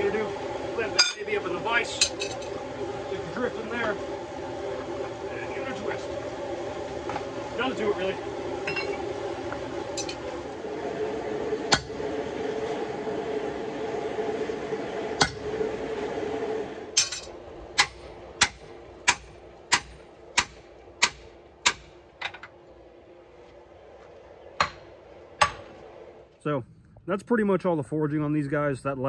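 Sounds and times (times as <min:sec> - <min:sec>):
steady hum: 0:00.0 - 0:29.0.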